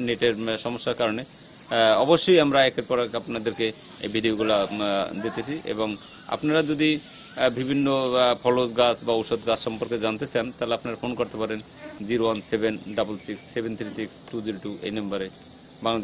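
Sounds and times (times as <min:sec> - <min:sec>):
insect chorus droning: 0:00.0 - 0:16.0
man talking: 0:00.0 - 0:16.0.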